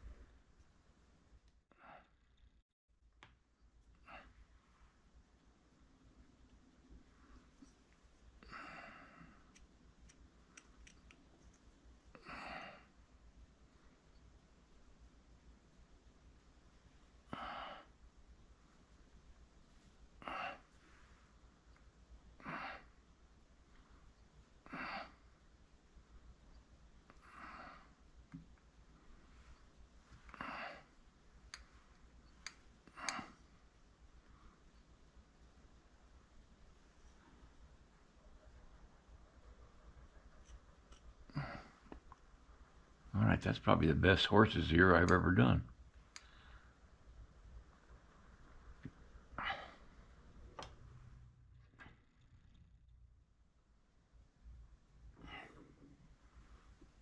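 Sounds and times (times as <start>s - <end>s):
soft exhaled breaths: 7.0s - 9.7s, 17.2s - 18.8s, 19.7s - 21.6s, 22.3s - 23.2s, 23.8s - 25.5s, 27.1s - 28.1s, 28.9s - 34.9s, 46.0s - 47.1s, 55.0s - 57.0s
faint clicks: 9.2s - 12.3s, 31.4s - 33.6s, 40.2s - 42.3s, 46.0s - 46.6s.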